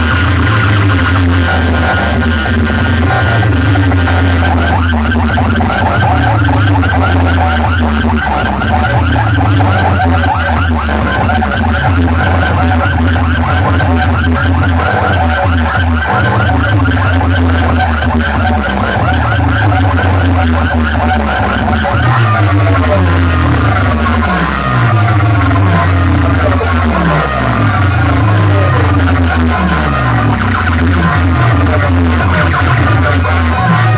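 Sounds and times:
loud electronic dance music: 0.0 - 33.9.

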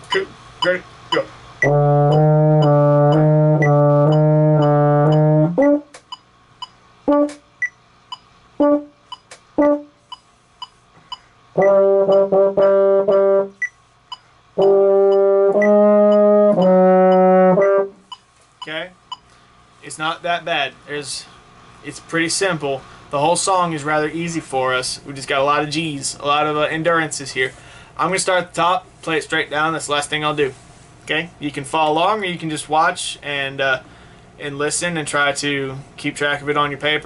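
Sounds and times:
baritone horn playing: 1.6 - 5.9, 7.1 - 7.4, 8.6 - 9.0, 9.6 - 10.0, 11.6 - 13.6, 14.6 - 18.0.

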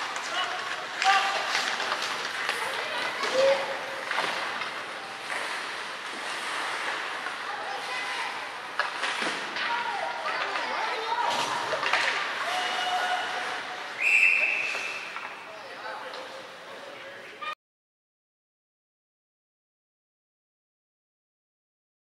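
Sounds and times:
referee's whistle blast: 14.0 - 15.1.

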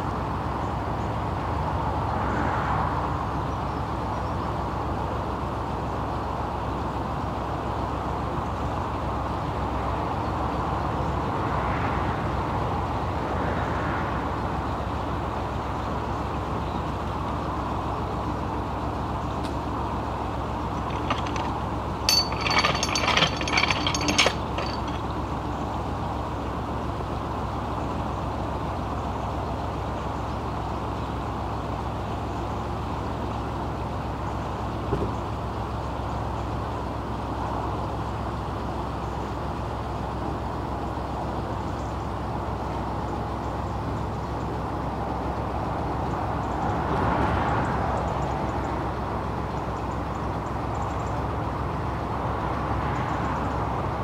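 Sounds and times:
traffic passing: 1.4 - 4.1.

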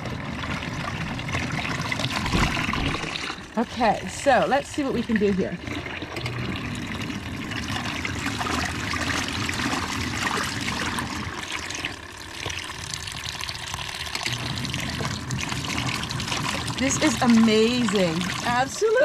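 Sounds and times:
water stream splashing into tub: 0.0 - 19.0.

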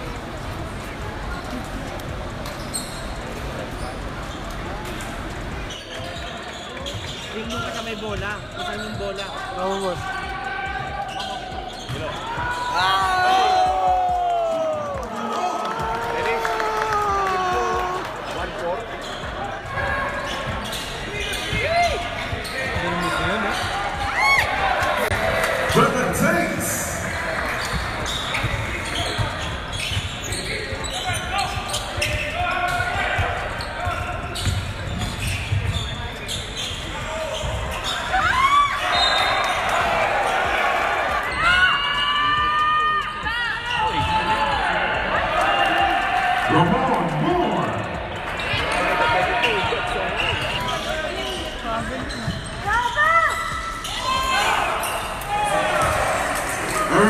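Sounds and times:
sneakers squeaking: 0.0 - 13.8, 17.5 - 44.4, 47.8 - 57.0
murmur of spectators: 0.0 - 57.0.

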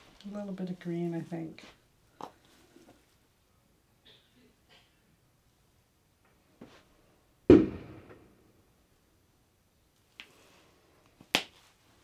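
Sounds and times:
sharp knock: 7.5 - 8.2.

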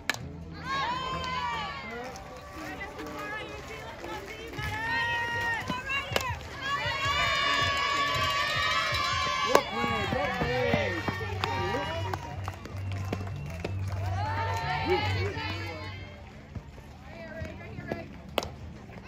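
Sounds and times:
crowd yelling and cheering: 0.4 - 17.8.

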